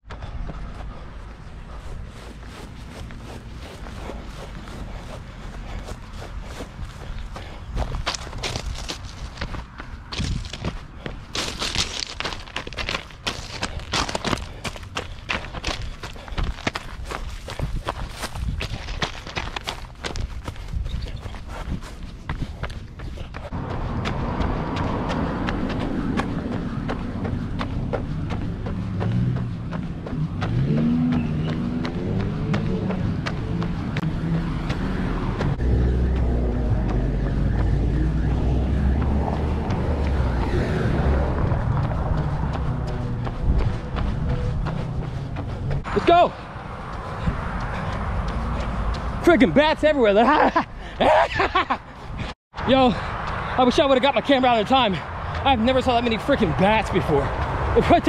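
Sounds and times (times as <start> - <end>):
running footsteps on gravel: 0.1 - 37.7, 38.9 - 50.7
cars passing: 0.1 - 58.0.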